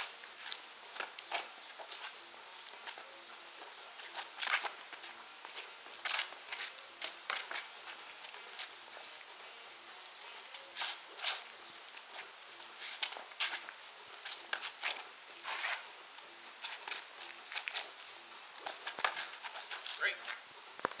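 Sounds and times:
sneakers scuffing on asphalt: 0.0 - 20.4.

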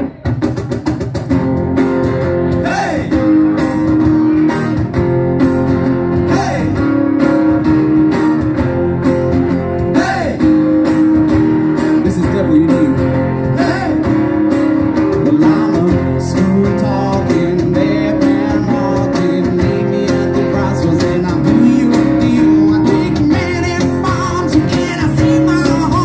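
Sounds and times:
acoustic guitars strummed: 0.0 - 26.0.

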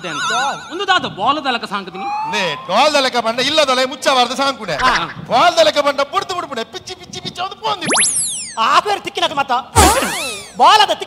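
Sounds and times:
cartoon comedy sound effect: 0.0 - 1.0, 7.8 - 8.7, 9.8 - 10.6
man speaking: 4.7 - 5.2.

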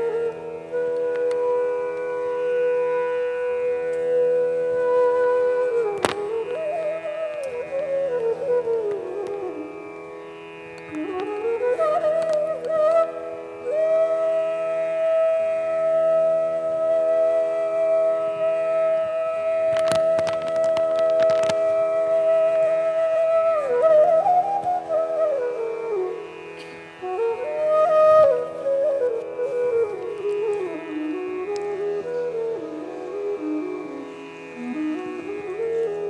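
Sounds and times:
bamboo flute long note: 0.0 - 36.0.

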